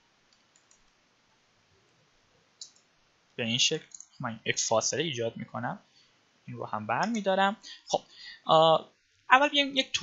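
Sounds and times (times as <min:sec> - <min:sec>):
soft clicks: 0:00.3 - 0:01.0, 0:02.6 - 0:02.9, 0:03.8 - 0:04.2.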